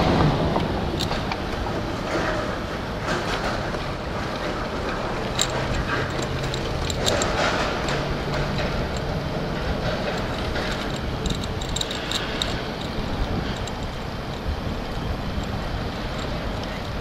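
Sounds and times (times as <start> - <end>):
bicycle tyres on asphalt: 0.0 - 17.0
wind rumble on microphone: 0.0 - 17.0
light rattling clicks: 0.6 - 17.0.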